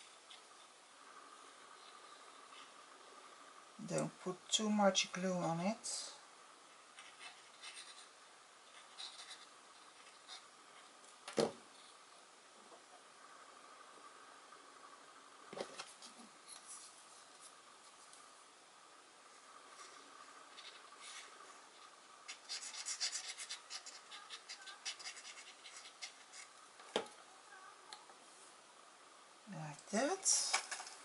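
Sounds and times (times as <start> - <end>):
rapid scratching and rubbing: 6.8 - 11.0, 19.6 - 26.6.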